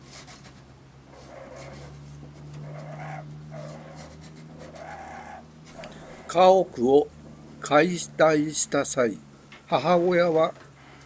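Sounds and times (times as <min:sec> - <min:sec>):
steady low hum: 0:00.0 - 0:11.0
raccoons breathy sounds: 0:02.6 - 0:06.5.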